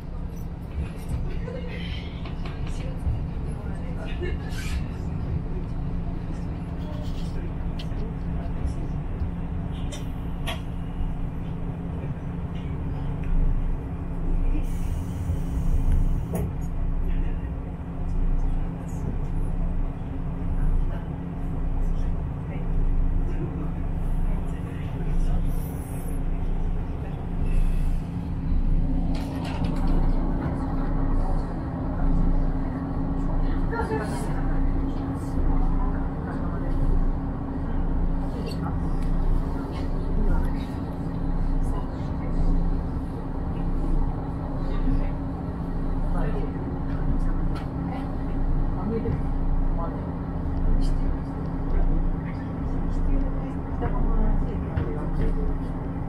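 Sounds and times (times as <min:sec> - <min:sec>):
diesel railcar engine drone: 0:00.0 - 0:56.0.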